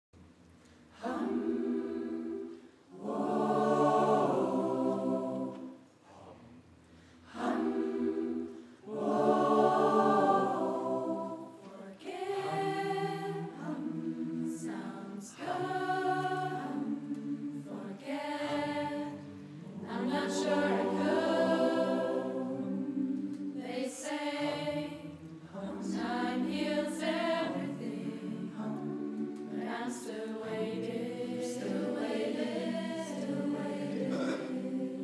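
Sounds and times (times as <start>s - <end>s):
choir singing sustained chords: 0.7s - 6.0s, 7.0s - 35.0s
singers breathing: 6.8s - 7.3s.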